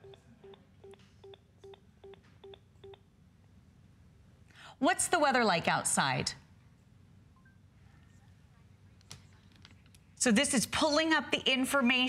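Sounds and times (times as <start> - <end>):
faint low electronic beeps: 0.0 - 3.0.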